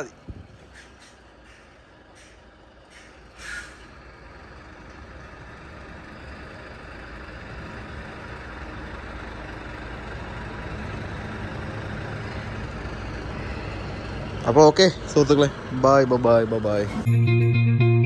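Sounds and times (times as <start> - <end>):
diesel truck engine running: 0.0 - 18.0
air brakes hissing: 0.5 - 4.0.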